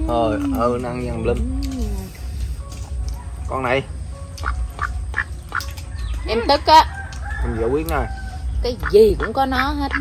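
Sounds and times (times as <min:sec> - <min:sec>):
duck quacking: 0:04.4 - 0:05.7, 0:08.7 - 0:10.0.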